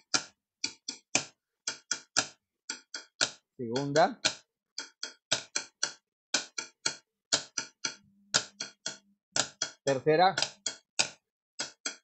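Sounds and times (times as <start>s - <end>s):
sharp percussive taps: 0.0s - 12.0s.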